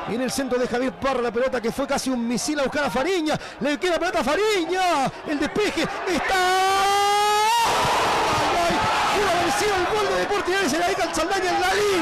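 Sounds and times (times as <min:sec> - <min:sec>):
loud crowd cheering: 0:00.0 - 0:12.0
commentator shouting: 0:08.4 - 0:12.0.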